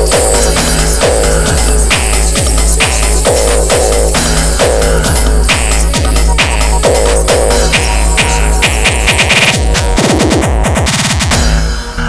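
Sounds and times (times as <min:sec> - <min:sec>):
busy high percussion: 0:00.0 - 0:12.0
hardcore electronic track: 0:00.0 - 0:12.0.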